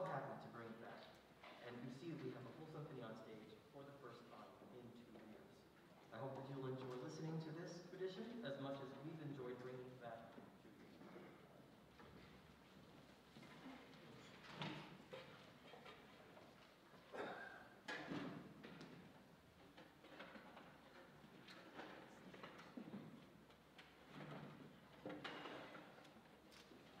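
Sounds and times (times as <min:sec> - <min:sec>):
orchestra shifting chairs and instruments: 0:13.3 - 0:27.0.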